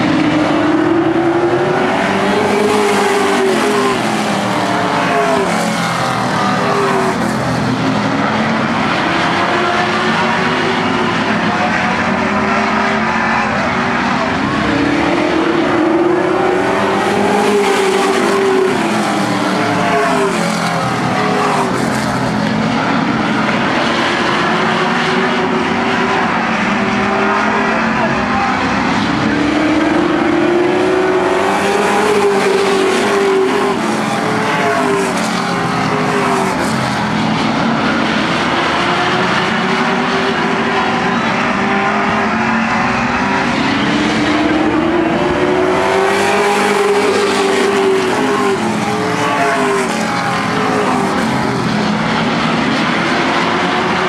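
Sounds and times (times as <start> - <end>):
race car engines racing: 0.0 - 54.0.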